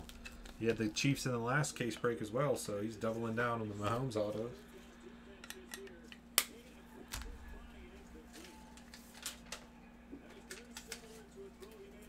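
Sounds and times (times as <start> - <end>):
cards and packaging rustling: 8.2 - 11.9.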